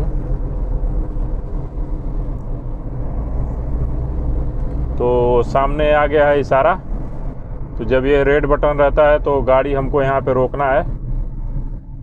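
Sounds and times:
car engine and tyre rumble: 0.0 - 12.0.

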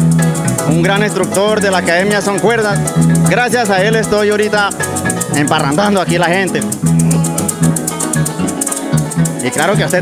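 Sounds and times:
electric bass: 0.0 - 10.0
maracas shaking: 0.0 - 10.0
plucked harp: 0.0 - 10.0.

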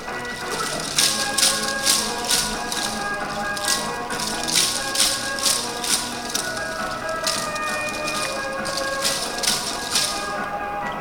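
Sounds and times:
wooden clappers clattering: 0.0 - 10.6.

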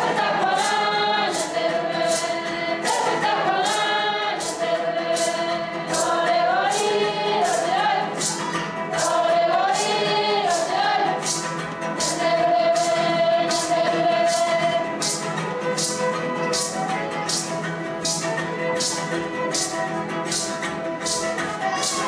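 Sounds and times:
choir singing: 0.0 - 22.0
light percussion beat: 0.0 - 22.0.

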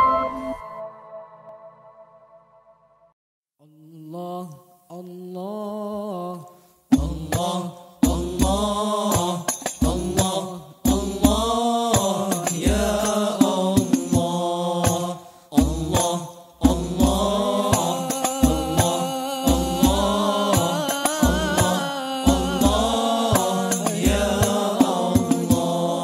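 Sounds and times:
men singing in a group: 3.8 - 26.0
frame drums beating: 16.7 - 25.9.

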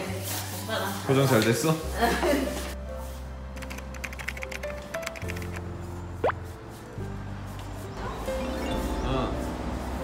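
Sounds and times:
soft background music: 0.0 - 10.0
keyboard typing clicks: 3.6 - 5.6.

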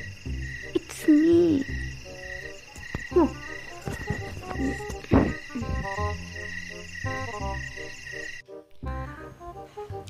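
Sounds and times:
frogs croaking: 0.0 - 8.6
insects chirping: 0.0 - 8.6
light melodic background music: 0.0 - 10.0.

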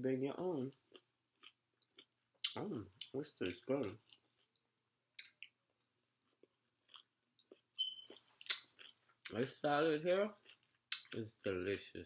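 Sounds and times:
person chewing: 0.7 - 9.5, 10.4 - 12.0.

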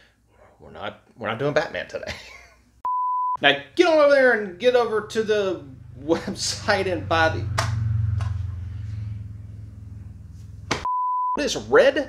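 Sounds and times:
steady low hum: 3.7 - 10.9.

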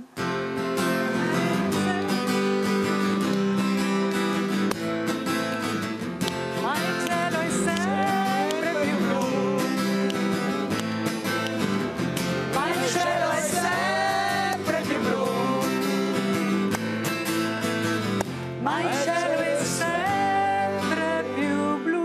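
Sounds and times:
guitar strumming chords: 0.0 - 22.0.

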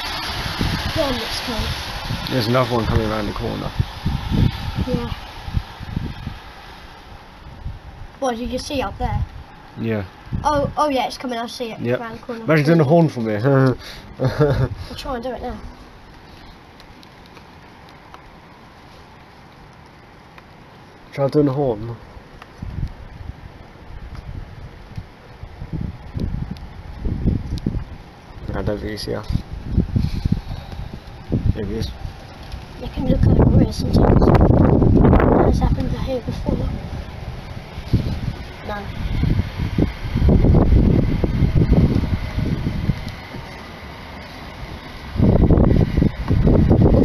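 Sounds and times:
wind buffeting microphone: 0.0 - 18.6, 21.2 - 47.0
faint steady hiss: 0.0 - 47.0.

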